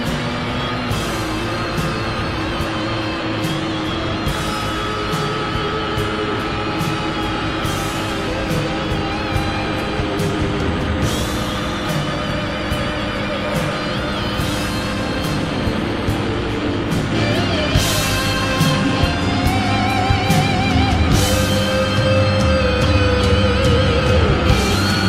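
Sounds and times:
background music with a beat: 0.0 - 25.0.

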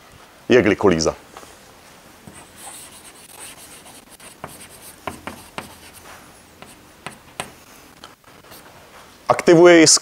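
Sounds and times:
chalk scratching on a chalkboard: 2.3 - 7.6
chalk tapping a board: 2.3 - 7.6.

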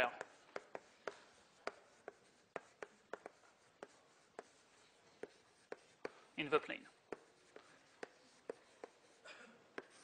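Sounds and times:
chalk tapping and scratching on blackboard: 0.0 - 10.0.

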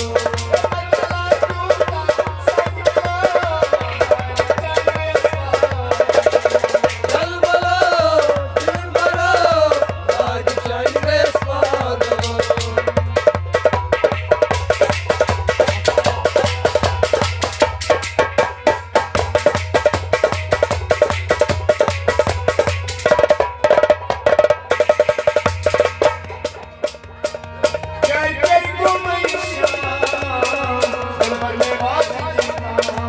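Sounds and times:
harmonium melody: 0.0 - 33.0.

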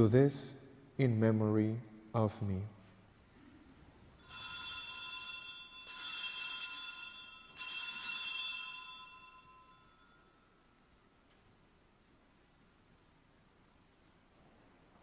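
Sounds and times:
altar bells ringing: 4.2 - 10.9.

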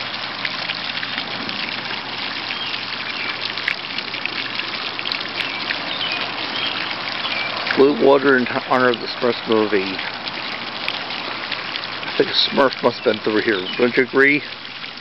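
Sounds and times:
fountain water splashing: 0.0 - 15.0.

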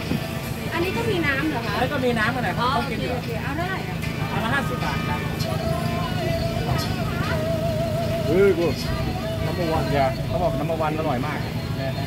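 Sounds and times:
road traffic rumble: 0.0 - 12.0
people talking: 0.6 - 12.0
wavering held melodic tone: 4.2 - 12.0.

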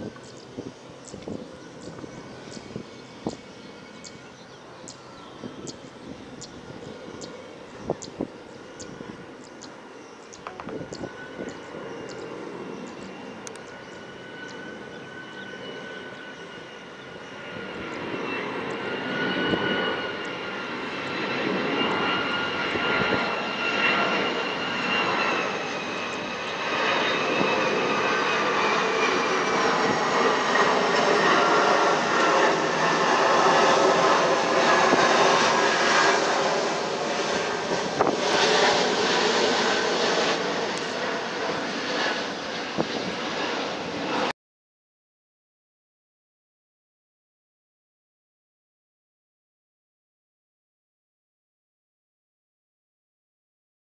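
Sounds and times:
jet engines passing overhead: 0.0 - 44.3.

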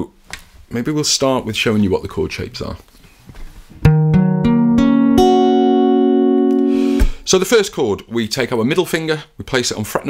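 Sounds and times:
acoustic guitar chord picked: 3.8 - 7.2.

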